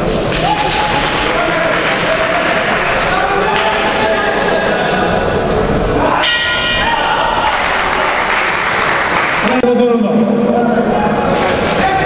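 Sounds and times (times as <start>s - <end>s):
boxing ring bell clang: 6.2s - 7.0s.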